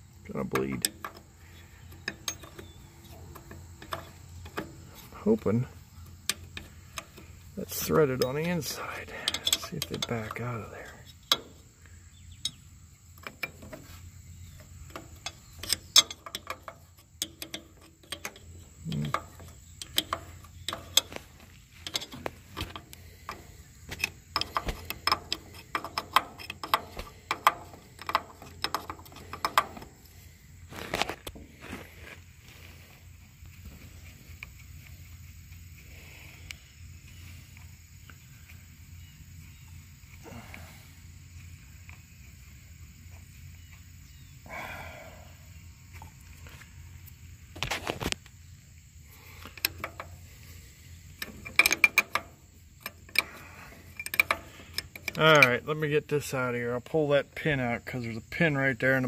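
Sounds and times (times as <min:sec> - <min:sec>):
faint steady background noise: 0:00.0 - 0:59.0
metal wrench clicking on bolts: 0:00.4 - 0:04.8, 0:06.0 - 0:11.6, 0:14.5 - 0:30.1, 0:49.4 - 0:50.2, 0:51.1 - 0:56.4.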